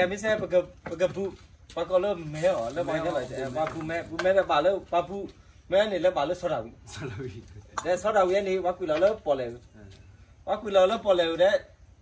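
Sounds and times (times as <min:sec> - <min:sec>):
man talking: 0:00.0 - 0:11.7.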